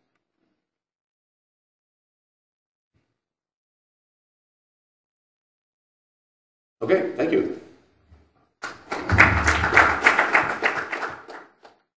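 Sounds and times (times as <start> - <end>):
audience applause: 8.6 - 11.8.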